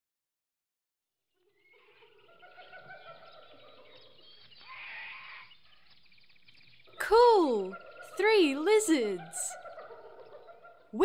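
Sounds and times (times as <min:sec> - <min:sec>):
overlapping animal calls: 0:01.5 - 0:05.6, 0:07.0 - 0:11.0.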